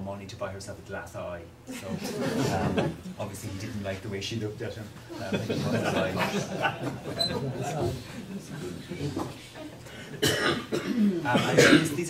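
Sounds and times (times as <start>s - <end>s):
person coughing: 9.9s - 12.0s.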